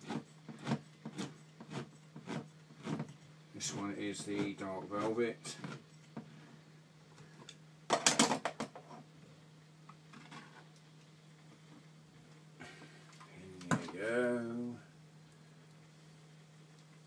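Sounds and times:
steady low hum: 0.0 - 8.0, 8.7 - 17.0.

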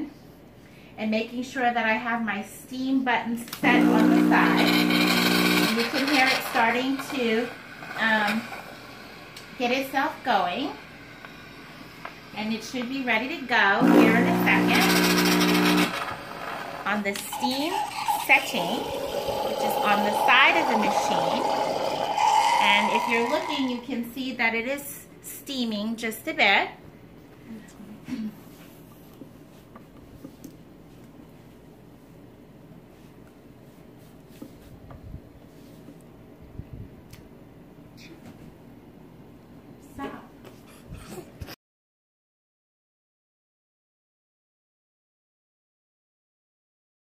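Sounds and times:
electric pump hum: 3.6 - 23.8
steam hissing into milk: 5.6 - 23.8.

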